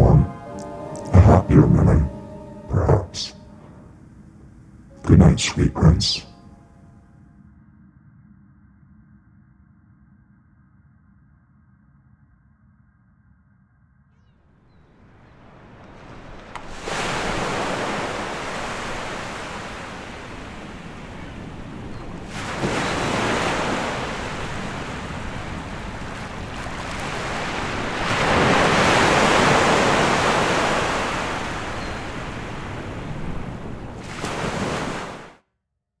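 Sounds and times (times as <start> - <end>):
ocean waves washing on shore: 0.0 - 3.6, 14.8 - 35.4.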